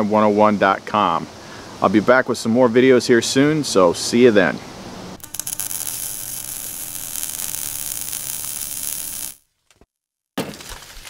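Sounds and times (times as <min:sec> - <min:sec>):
static-like hissing: 0:05.0 - 0:09.4.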